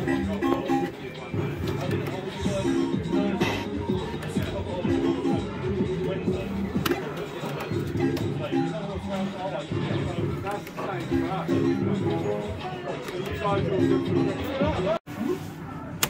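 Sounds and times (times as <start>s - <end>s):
arcade background noise: 0.0s - 16.0s.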